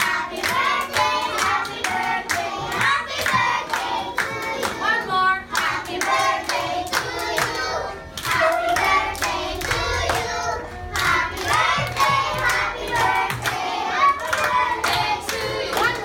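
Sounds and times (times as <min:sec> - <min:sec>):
children and woman singing: 0:00.0 - 0:16.0
people clapping in time: 0:00.0 - 0:16.0.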